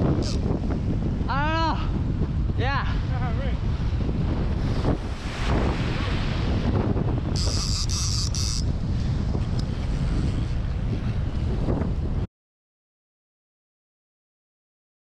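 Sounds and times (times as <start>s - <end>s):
surf: 0.0s - 12.2s
wind buffeting microphone: 0.0s - 12.3s
high-pitched rasping bursts: 7.4s - 8.6s.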